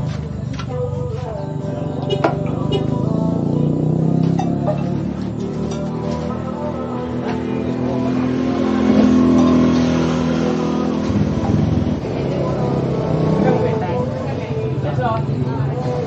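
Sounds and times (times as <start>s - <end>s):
voices talking: 0.0s - 9.4s, 10.4s - 16.0s
vehicle engine running: 0.0s - 16.0s.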